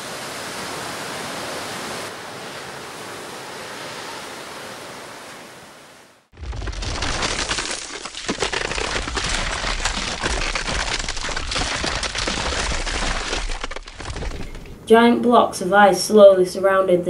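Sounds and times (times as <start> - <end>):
ice cracking and crunching: 6.4 - 14.8.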